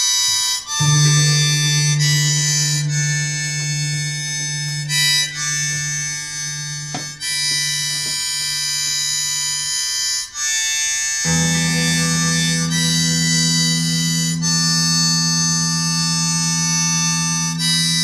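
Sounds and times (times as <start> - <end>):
harmonica playing high notes: 0.0 - 18.0
low sustained drone: 0.8 - 9.7, 11.2 - 18.0.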